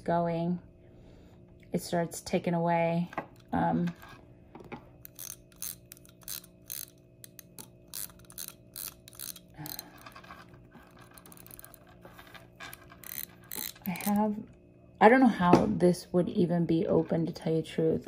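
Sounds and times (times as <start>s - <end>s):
watch winding ratchet clicks: 5.0s - 14.3s.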